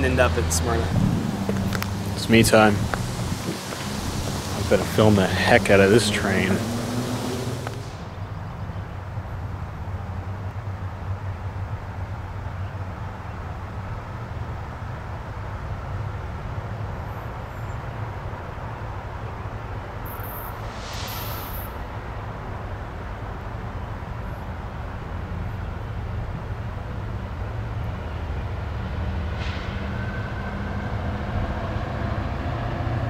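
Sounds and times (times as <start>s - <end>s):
diesel locomotive rumble: 0.0s - 10.4s, 20.5s - 33.0s.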